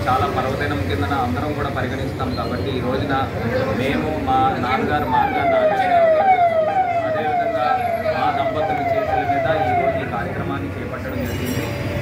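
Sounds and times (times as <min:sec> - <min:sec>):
crowd chatter: 0:02.4 - 0:12.0
electronic siren wailing: 0:04.9 - 0:10.4.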